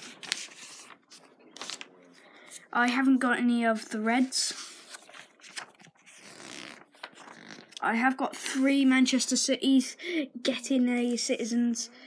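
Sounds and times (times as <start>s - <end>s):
paper page rustling: 0.0s - 1.9s, 3.7s - 7.8s.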